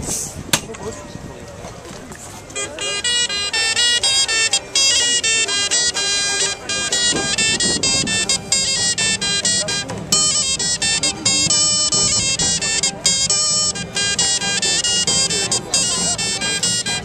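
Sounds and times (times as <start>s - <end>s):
bowed fiddle: 2.1s - 17.0s
wooden pipe melody: 2.1s - 17.0s.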